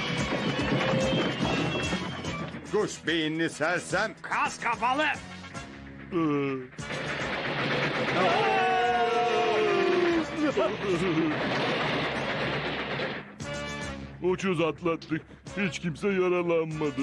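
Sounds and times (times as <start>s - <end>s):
music: 0.0s - 17.0s
loud crashing rumble: 6.8s - 10.0s, 10.8s - 13.4s
long falling yell: 8.2s - 10.3s.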